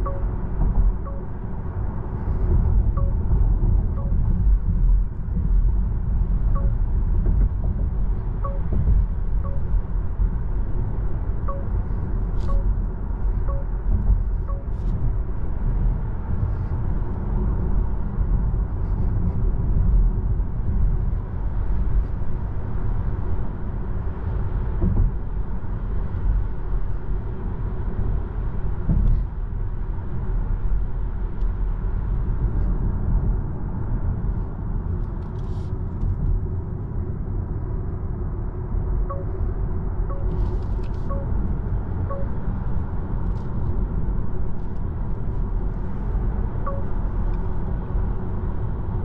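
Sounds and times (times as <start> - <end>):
road and tyre rumble: 0.0 - 49.0.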